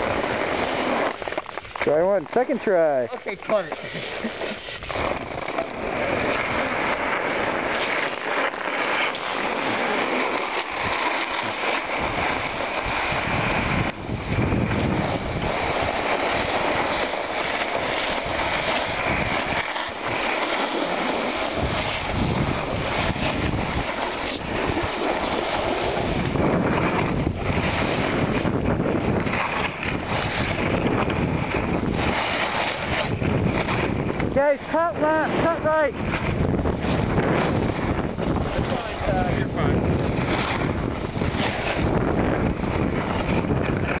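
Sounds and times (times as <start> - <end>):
skis sliding over snow: 0.0 - 44.0
wind buffeting microphone: 0.0 - 44.0.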